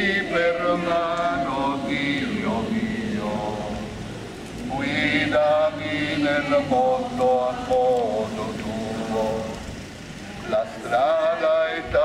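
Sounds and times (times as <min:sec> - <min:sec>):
voices singing a hymn: 0:00.0 - 0:09.8, 0:10.4 - 0:12.0.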